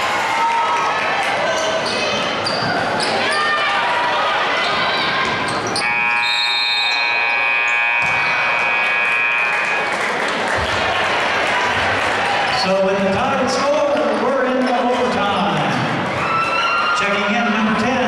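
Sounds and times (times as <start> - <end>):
crowd noise: 0.0 - 18.0
scoreboard buzzer: 5.8 - 11.2.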